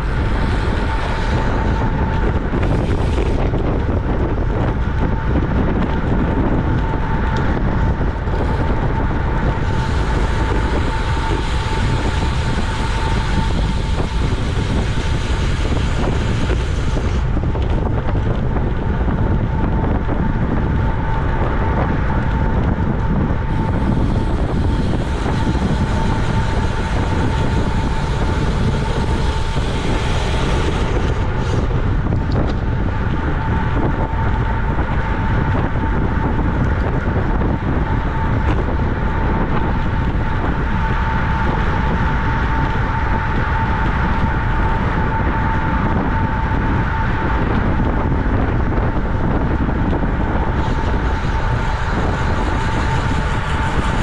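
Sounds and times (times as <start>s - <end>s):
wind rushing over microphone: 0.0s - 54.0s.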